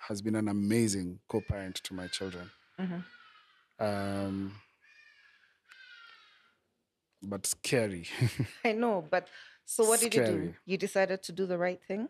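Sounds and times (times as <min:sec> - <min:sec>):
faint high-pitched calls: 0:00.0 - 0:04.6.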